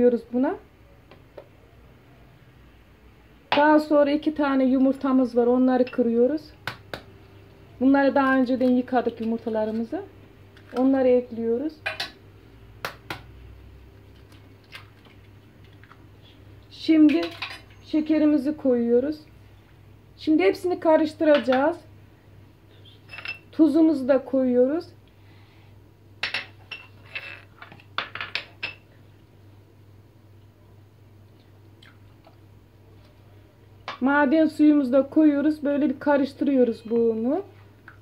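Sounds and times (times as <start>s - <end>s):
low steady hum: 0.0s - 38.0s.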